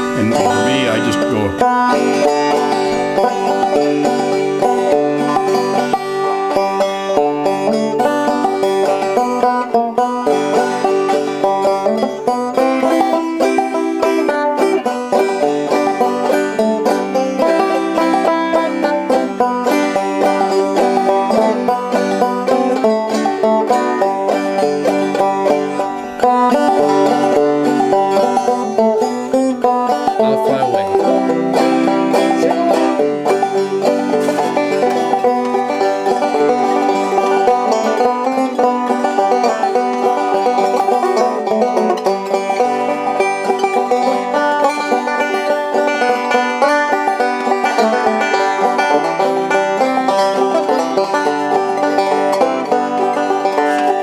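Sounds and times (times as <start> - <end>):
banjo playing old-time tune: 0.0 - 54.0.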